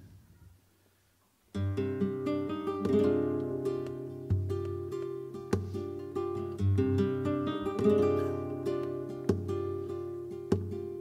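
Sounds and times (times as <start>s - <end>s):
plucked acoustic guitar notes: 1.6s - 11.0s.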